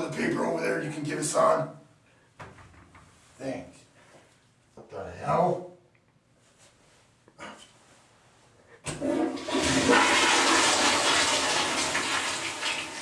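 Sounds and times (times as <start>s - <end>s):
toilet flushing: 8.9s - 13.0s.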